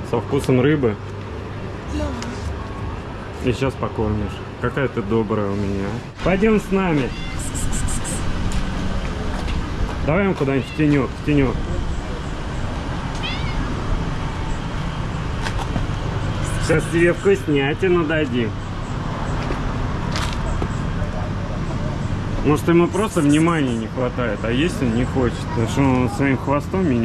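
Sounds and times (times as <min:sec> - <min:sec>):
street traffic rumble: 0:00.0 - 0:27.0.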